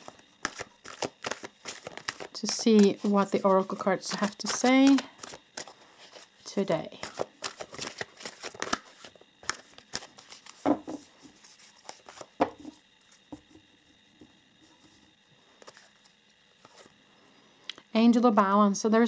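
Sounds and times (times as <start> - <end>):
cards being shuffled: 0.0 - 6.4, 7.0 - 13.4, 15.6 - 16.9.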